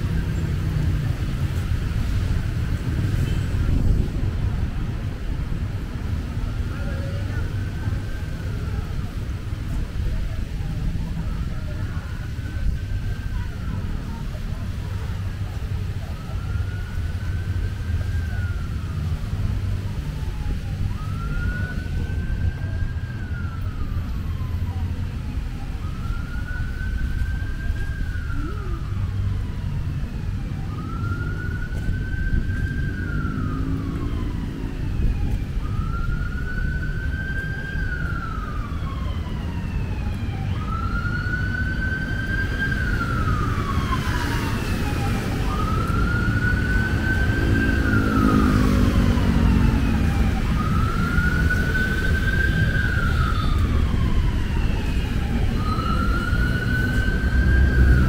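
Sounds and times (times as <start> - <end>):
emergency siren wailing: 0.0 - 58.0
road traffic rumble: 0.0 - 58.0.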